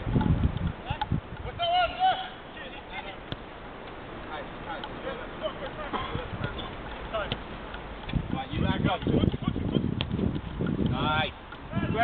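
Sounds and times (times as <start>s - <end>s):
players shouting: 1.5s - 3.3s
ball being kicked: 3.2s - 3.5s, 6.1s - 10.5s.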